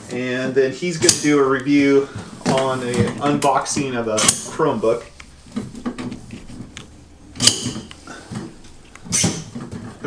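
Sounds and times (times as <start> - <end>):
table legs clicking: 1.0 - 10.0
table leg snapping into place: 7.4 - 9.7.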